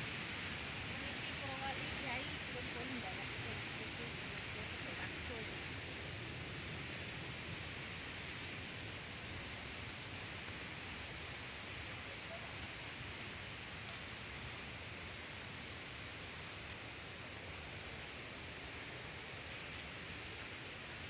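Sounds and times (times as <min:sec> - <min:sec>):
waterfall rushing: 0:00.0 - 0:17.4.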